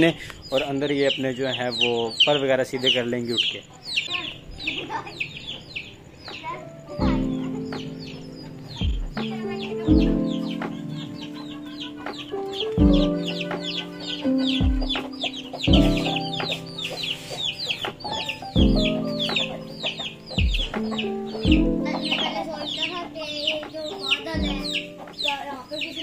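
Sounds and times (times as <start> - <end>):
chicks peeping: 0.0 - 26.0
background music of low chords: 5.7 - 26.0
bass thump: 15.7 - 16.1, 18.6 - 19.0.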